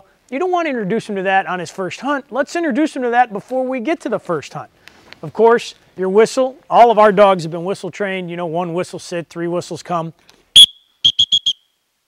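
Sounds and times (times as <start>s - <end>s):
dog whistle blasts: 10.6s - 11.8s.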